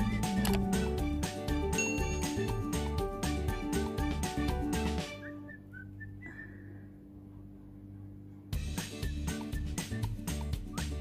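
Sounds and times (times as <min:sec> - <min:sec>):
background music: 0:00.0 - 0:05.8, 0:08.4 - 0:11.0
faint whistled notes: 0:05.1 - 0:06.9, 0:09.0 - 0:11.0
low steady hum: 0:05.3 - 0:08.6.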